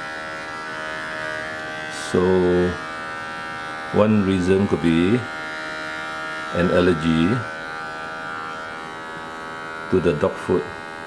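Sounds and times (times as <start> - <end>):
small motor buzzing: 0.0 - 11.0.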